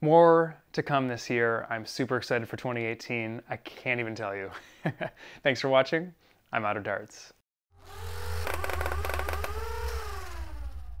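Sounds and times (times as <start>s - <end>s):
low rumble: 8.3s - 11.0s.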